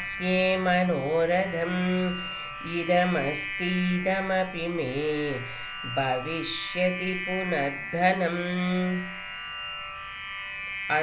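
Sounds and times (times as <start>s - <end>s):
person chanting verse: 0.0s - 9.2s
musical drone: 0.0s - 11.0s.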